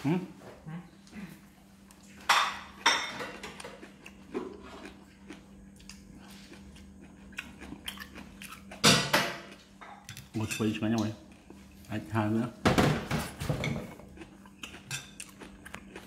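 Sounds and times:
steady low hum: 0:00.0 - 0:16.0
chewing: 0:01.0 - 0:08.8, 0:13.8 - 0:16.0.

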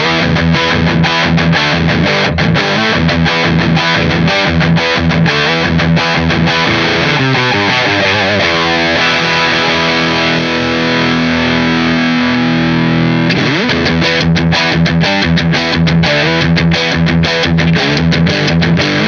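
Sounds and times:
distorted electric guitar riffing: 0:00.0 - 0:19.0.

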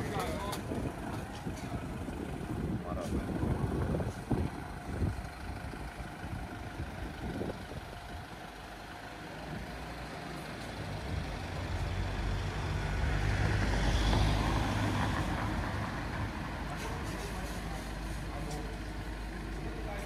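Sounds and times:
street traffic: 0:00.0 - 0:20.0
vehicle engine rumble: 0:00.0 - 0:20.0.

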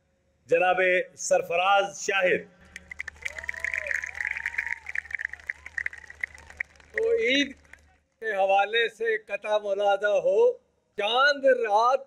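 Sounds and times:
audience applauding: 0:02.6 - 0:08.0.

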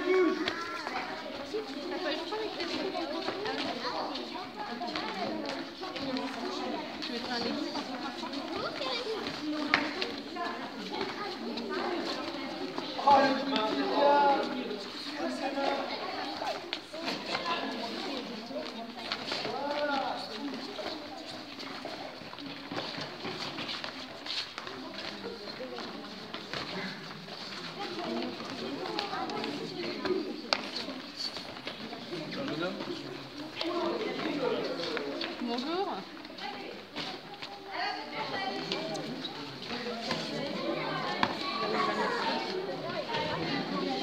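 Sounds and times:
footwork on floor: 0:00.0 - 0:44.0
indistinct voices in hall: 0:00.0 - 0:44.0.

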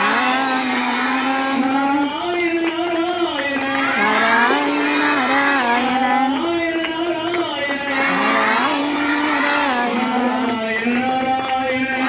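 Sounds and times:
children singing in unison: 0:00.0 - 0:02.1, 0:03.6 - 0:06.6, 0:07.7 - 0:10.6.

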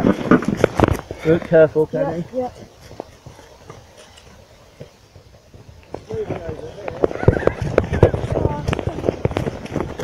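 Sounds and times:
footsteps on grass: 0:00.0 - 0:10.0.

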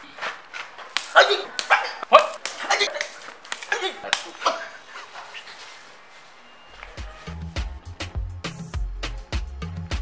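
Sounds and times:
sharp yelping cries: 0:01.0 - 0:05.6.

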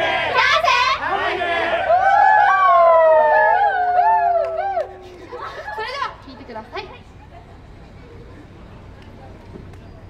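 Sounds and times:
voices shouting long call: 0:00.0 - 0:06.2.

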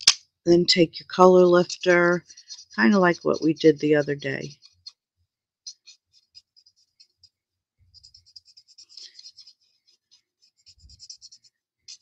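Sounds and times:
marker scratching on cardstock: 0:00.8 - 0:12.0.

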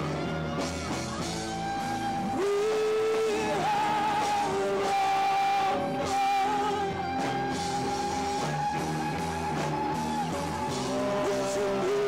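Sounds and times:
industrial rock music: 0:00.0 - 0:12.0.

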